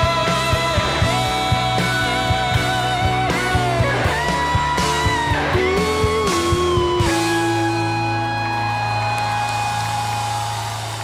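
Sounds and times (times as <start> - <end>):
rock chord ringing through guitar amplifiers: 0.0 - 11.0.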